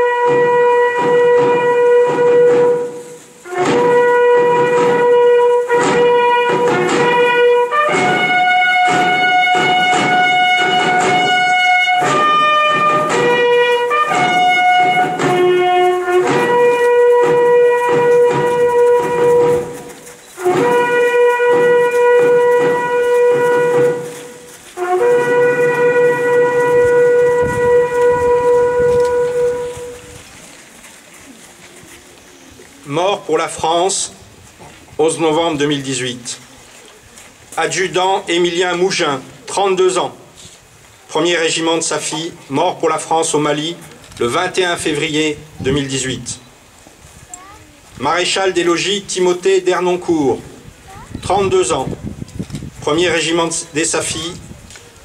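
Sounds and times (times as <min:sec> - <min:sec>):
bugle call on brass instrument: 0:00.0 - 0:30.3, 0:52.8 - 0:54.6.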